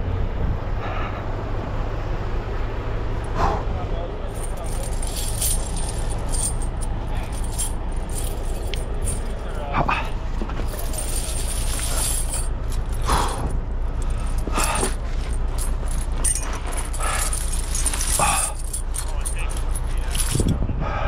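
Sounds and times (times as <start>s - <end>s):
diesel engine idling: 0.0s - 21.0s
tire chains jingling: 4.0s - 20.6s.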